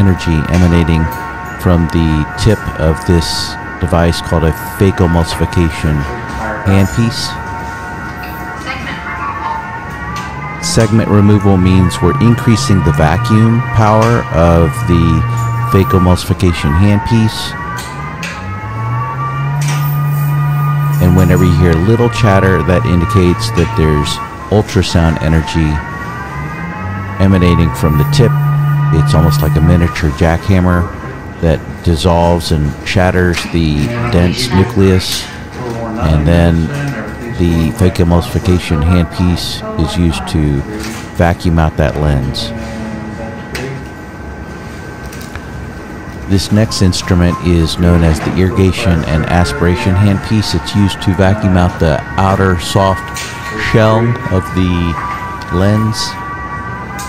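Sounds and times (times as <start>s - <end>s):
machine electronic hum: 0.0s - 57.0s
steady high tones: 0.0s - 57.0s.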